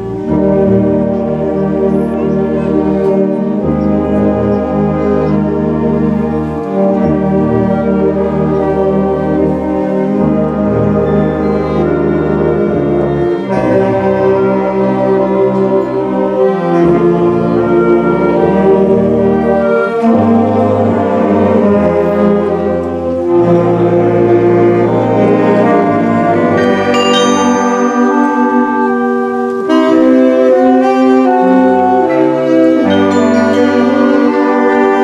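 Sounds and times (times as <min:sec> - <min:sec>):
wind and brass low notes: 0:00.0 - 0:35.0
carillon bells playing melody: 0:26.6 - 0:29.7, 0:32.9 - 0:35.0.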